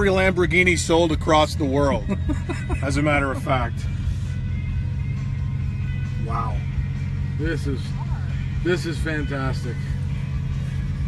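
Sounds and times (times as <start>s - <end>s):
car engine idling: 0.0s - 11.0s
music from car radio: 0.0s - 11.0s.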